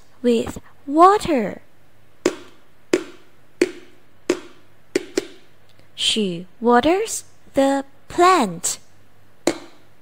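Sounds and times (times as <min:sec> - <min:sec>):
sharp percussive clicks: 0:02.2 - 0:05.4.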